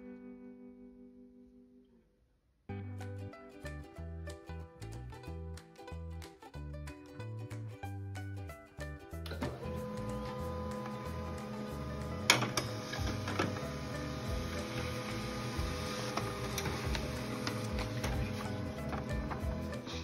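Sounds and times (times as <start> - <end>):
laser printer whirring: 9.5 - 19.0
printer clack: 12.2 - 13.6.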